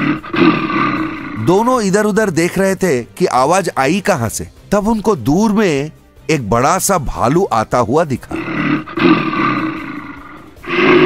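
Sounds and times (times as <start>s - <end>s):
cartoon bear roaring: 0.0s - 2.1s, 8.2s - 11.0s.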